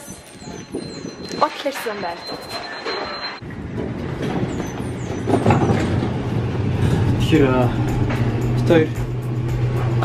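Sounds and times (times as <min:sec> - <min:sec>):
luggage cart wheels rattling: 0:00.8 - 0:08.2.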